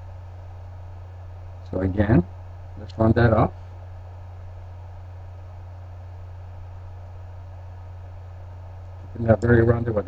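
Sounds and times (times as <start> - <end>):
low hum with faint hiss: 0.0 - 10.0.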